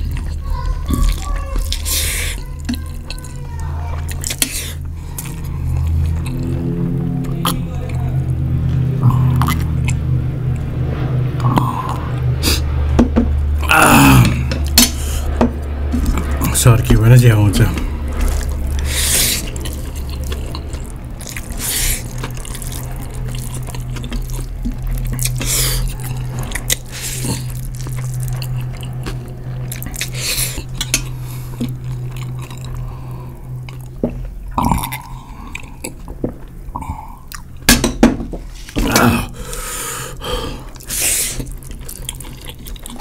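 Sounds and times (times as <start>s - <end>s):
noodles slurped and chewed: 0.0s - 7.6s, 16.0s - 37.6s, 38.5s - 43.0s
low steady hum: 0.0s - 43.0s.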